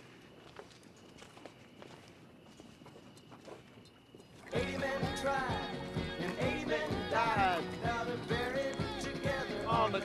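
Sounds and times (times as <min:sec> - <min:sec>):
quiet footsteps: 0:00.0 - 0:09.7.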